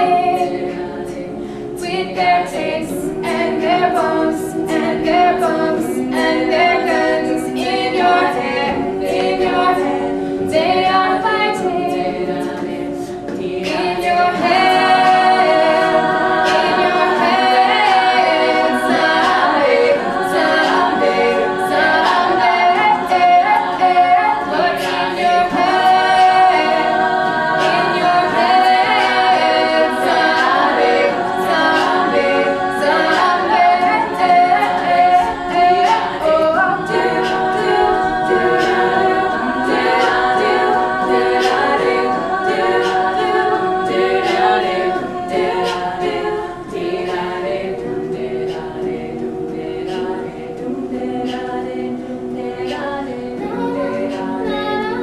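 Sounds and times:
women singing in close harmony: 0.0s - 55.0s.

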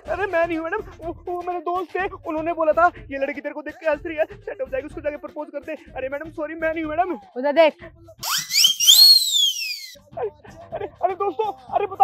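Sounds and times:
sliding comedy whistle: 8.2s - 10.0s.

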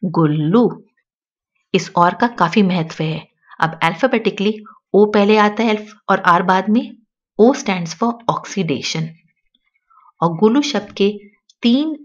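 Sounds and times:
woman speaking: 0.0s - 0.8s, 1.8s - 9.2s, 10.2s - 12.0s.

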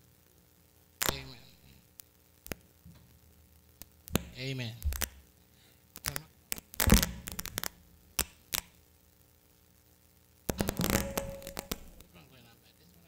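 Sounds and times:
rustling: 6.0s - 8.8s, 10.5s - 12.2s
microphone handling knocks: 6.8s - 7.7s, 10.5s - 12.0s.

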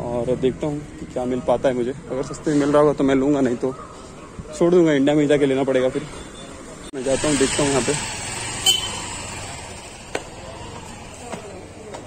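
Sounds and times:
street background noise: 0.0s - 12.0s.

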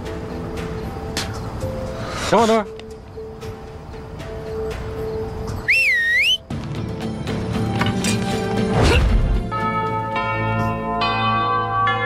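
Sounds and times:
background music: 0.0s - 12.0s
loud two-finger whistle: 5.6s - 6.5s.

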